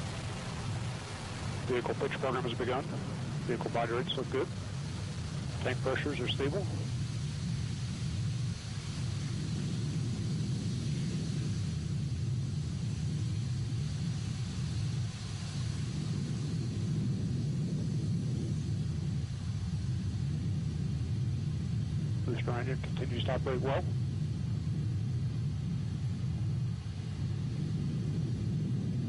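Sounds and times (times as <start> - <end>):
rocket engine rumbling: 0.0 - 29.0.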